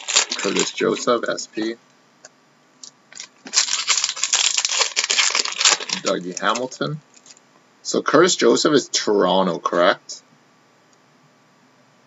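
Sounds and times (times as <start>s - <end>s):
wrapper tearing and crinkling: 0.0s - 1.2s, 3.1s - 7.4s.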